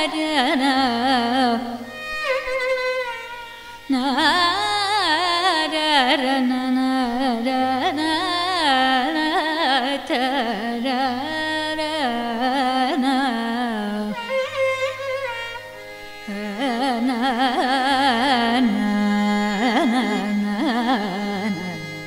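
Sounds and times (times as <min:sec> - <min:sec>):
violin accompaniment: 0:00.0 - 0:22.0
woman singing ornamented melody: 0:00.0 - 0:22.0.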